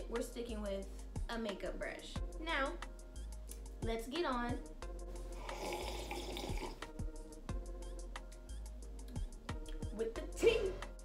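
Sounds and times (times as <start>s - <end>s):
background music: 0.0s - 11.0s
person slurping a drink: 5.4s - 6.8s.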